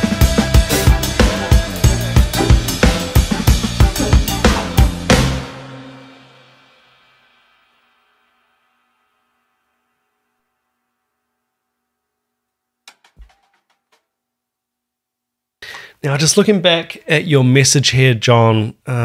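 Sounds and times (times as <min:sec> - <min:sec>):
drum kit played hard: 0:00.0 - 0:06.6
cymbal crash ringing out: 0:04.6 - 0:10.7.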